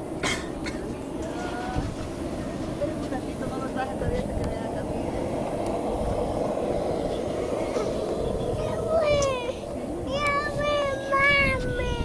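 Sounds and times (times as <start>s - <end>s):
steady loud rumble: 0.0s - 12.0s.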